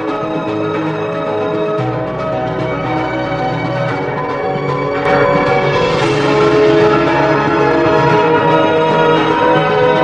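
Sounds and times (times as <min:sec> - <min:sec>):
bell-like chiming music: 0:00.0 - 0:10.0.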